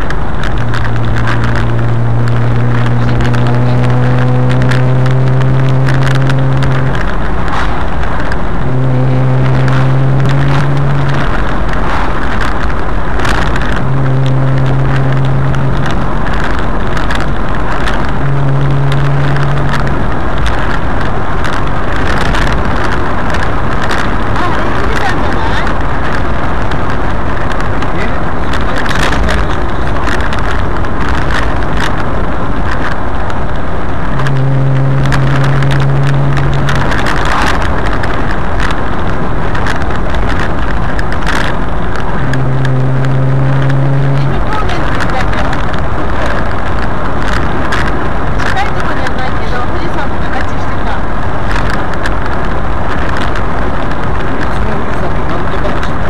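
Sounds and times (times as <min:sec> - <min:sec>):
low engine drone: 0:00.0 - 0:56.0
wind rushing over microphone: 0:00.0 - 0:56.0.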